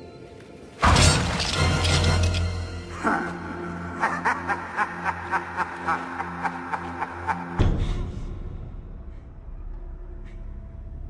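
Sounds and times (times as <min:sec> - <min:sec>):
debris smashing crash: 0:00.8 - 0:02.2
low droning horror score: 0:00.8 - 0:11.0.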